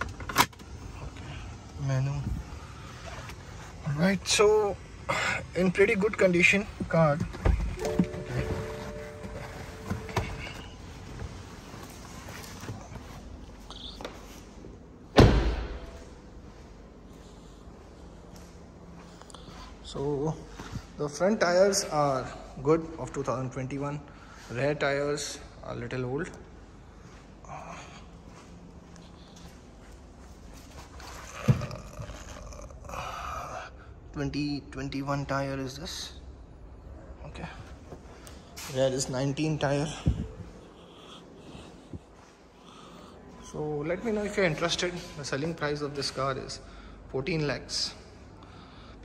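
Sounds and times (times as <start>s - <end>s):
car door shutting thud: 15.2s - 15.9s.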